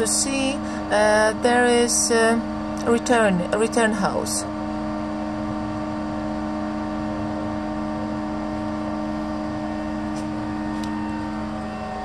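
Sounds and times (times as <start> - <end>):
tractor engine idling: 6.9 - 12.0.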